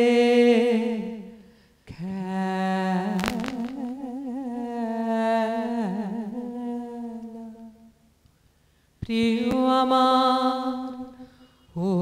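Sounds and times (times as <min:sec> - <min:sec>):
woman singing unaccompanied: 0:00.0 - 0:08.0, 0:09.0 - 0:12.0.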